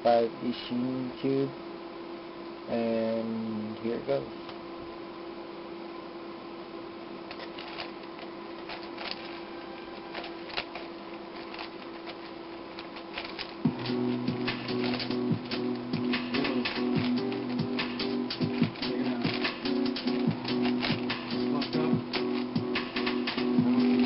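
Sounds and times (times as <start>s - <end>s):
puzzle cube clicking: 7.3s - 24.0s
background music: 13.7s - 24.0s.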